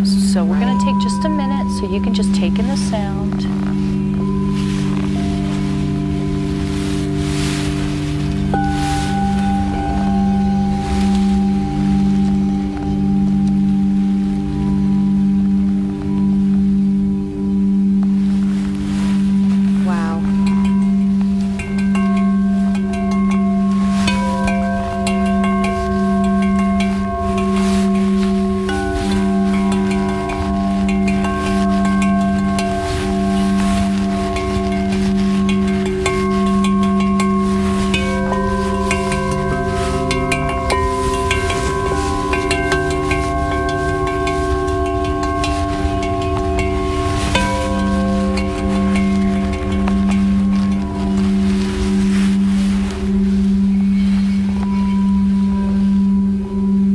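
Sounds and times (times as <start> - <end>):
high singing bowl tones: 0.0 - 56.9
low singing bowl pulsing: 0.0 - 56.9.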